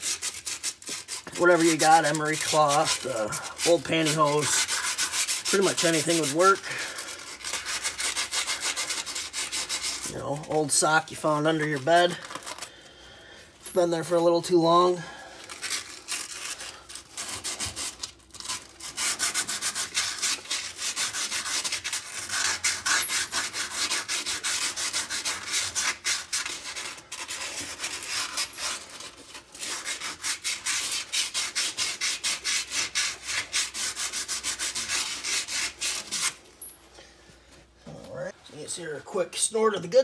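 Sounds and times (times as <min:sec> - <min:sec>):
sandpaper scraping inside metal bore: 0:00.0 - 0:12.7, 0:13.6 - 0:36.4.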